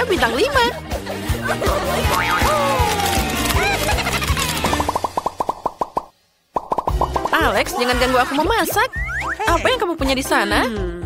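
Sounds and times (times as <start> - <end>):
light children's music: 0.0 - 5.1
rapid cartoon plops: 4.4 - 9.3.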